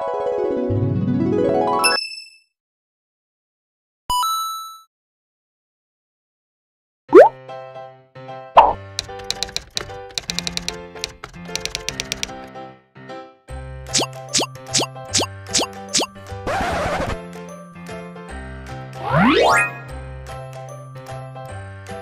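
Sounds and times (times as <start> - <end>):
rising pop effect: 7.2 - 7.4
quick pops: 9.0 - 12.5
typewriter-style clicks: 9.0 - 12.5.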